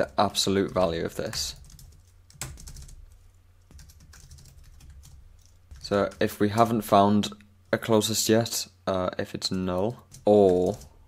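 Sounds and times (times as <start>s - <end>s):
computer keyboard typing: 0.0s - 6.8s, 9.7s - 11.0s.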